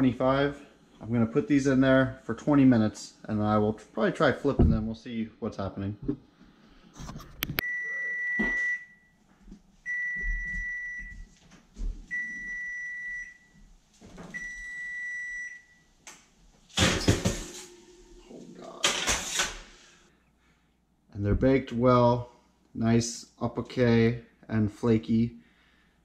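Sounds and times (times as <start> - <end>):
oven timer beeps: 7.6 - 9.2, 9.9 - 11.2, 12.1 - 13.6, 14.4 - 15.9
oven door and baking sheet clatter: 18.7 - 19.7.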